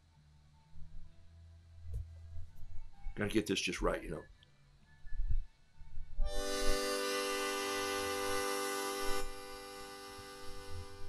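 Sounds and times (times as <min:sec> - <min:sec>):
harmonica-like held chord: 0:06.2 - 0:11.0.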